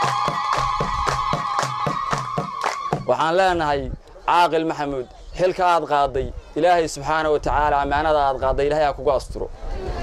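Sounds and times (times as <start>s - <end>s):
crowd clapping in rhythm: 0.0s - 3.2s.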